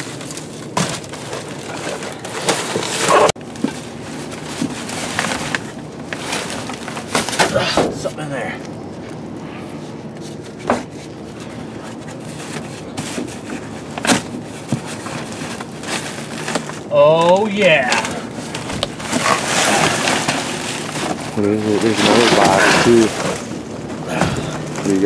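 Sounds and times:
plastic bags rustling: 0.0 - 25.0.

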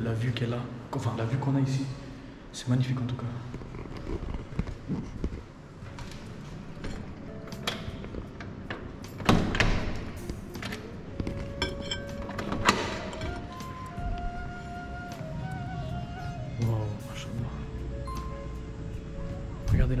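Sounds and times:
door rattle: 6.8 - 10.9, 11.6 - 13.6.

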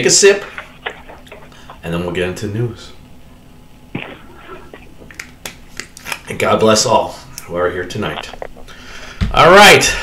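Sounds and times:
man swallowing: 3.9 - 5.4.

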